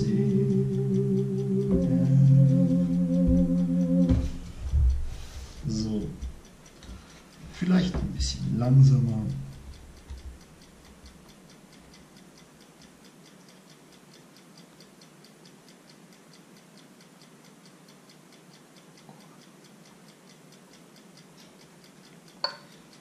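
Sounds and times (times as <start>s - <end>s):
metronome ticking: 0.0s - 23.0s.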